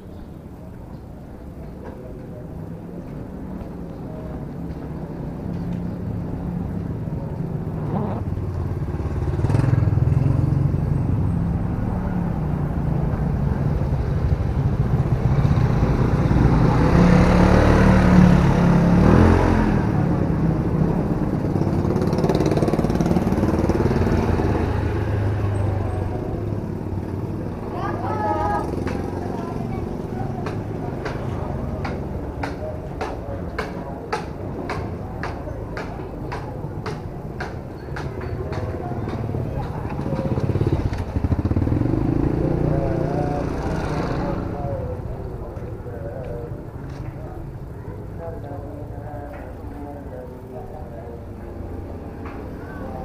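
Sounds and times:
motor scooter passing by: 7.4s - 31.6s, 38.6s - 45.1s.

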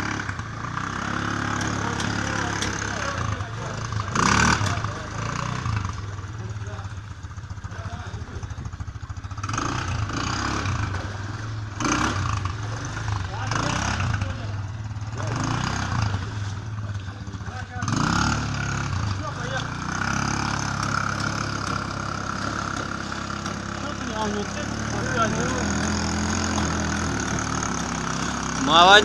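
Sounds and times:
quad bike engine revving: 0.0s - 29.0s.

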